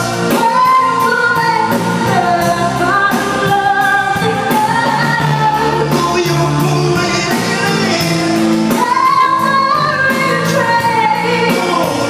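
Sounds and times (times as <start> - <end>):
drums: 0.0 - 12.0
electric guitar: 0.0 - 12.0
person singing: 0.0 - 12.0.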